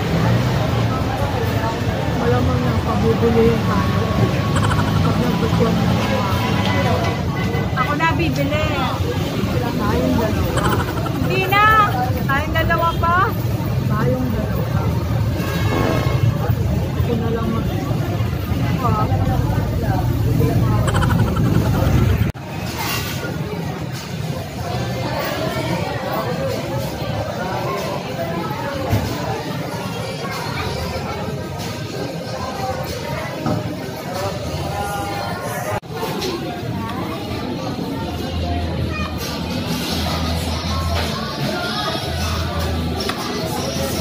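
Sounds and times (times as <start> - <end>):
voices talking indistinctly: 0.0 - 44.0.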